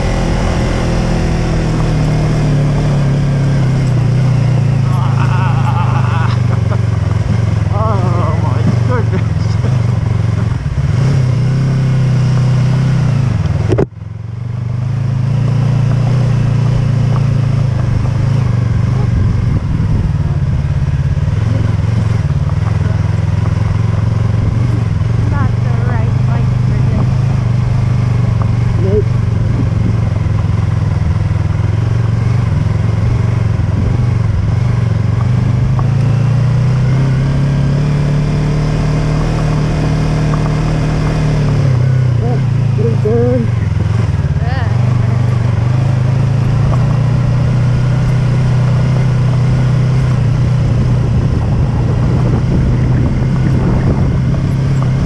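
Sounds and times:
tyres rumbling on gravel: 0.0 - 14.0, 14.8 - 55.0
motorcycle engine running: 0.0 - 55.0
wind noise: 17.8 - 31.2, 32.5 - 35.9, 46.4 - 55.0.

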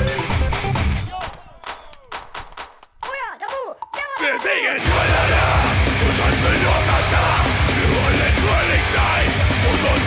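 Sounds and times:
music: 0.0 - 1.8, 3.8 - 10.0.

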